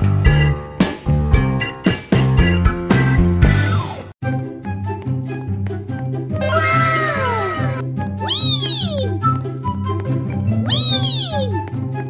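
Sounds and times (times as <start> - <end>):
background music with bass line: 0.0 - 8.9
cat meowing: 6.5 - 9.1, 10.7 - 11.5.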